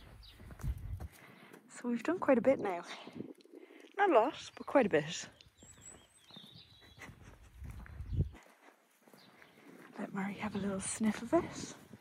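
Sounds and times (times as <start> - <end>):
footsteps on grass: 0.0 - 2.4, 5.1 - 12.0.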